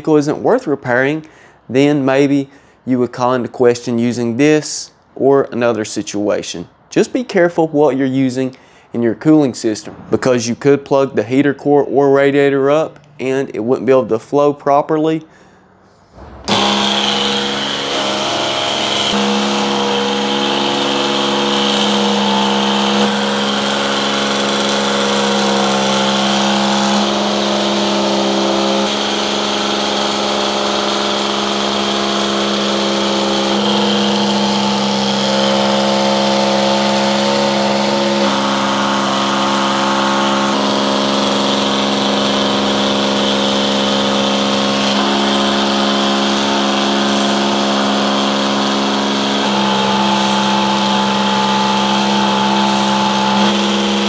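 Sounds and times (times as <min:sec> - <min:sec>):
electric pump humming: 0:16.0 - 0:54.0.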